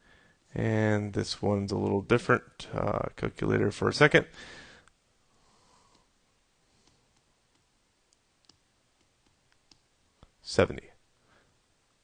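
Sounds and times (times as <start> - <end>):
faint computer mouse clicks: 6.8 - 9.9.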